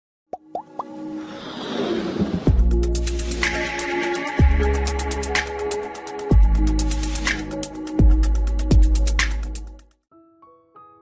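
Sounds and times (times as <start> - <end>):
hissing whoosh: 1.1 - 2.6.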